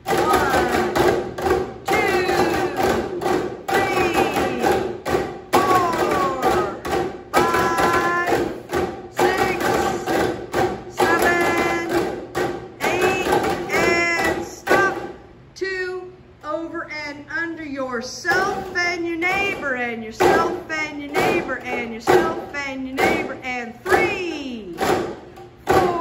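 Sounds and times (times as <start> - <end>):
hollow tube drumming: 0.0 - 15.5, 18.2 - 26.0.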